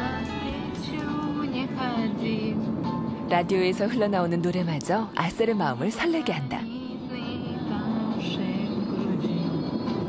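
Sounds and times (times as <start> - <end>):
song on car radio: 0.0 - 3.3, 4.0 - 10.0
road noise: 0.0 - 10.0.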